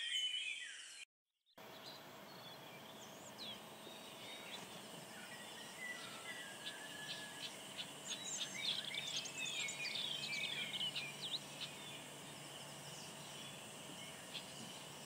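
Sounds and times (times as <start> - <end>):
faint outdoor background noise: 1.6 - 15.0
small birds chirping: 1.6 - 15.0.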